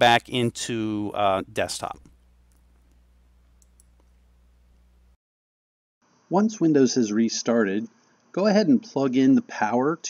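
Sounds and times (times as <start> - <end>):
low electrical hum: 0.0 - 5.2
faint clicks: 2.0 - 4.9.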